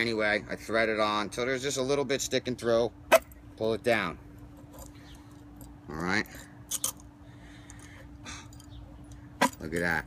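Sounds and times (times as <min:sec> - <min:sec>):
steady hum: 0:00.0 - 0:10.0.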